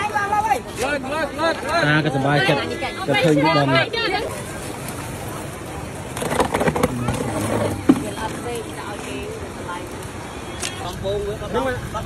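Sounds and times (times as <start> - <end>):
steady outdoor noise: 0.0 - 12.0
people talking: 6.6 - 12.0.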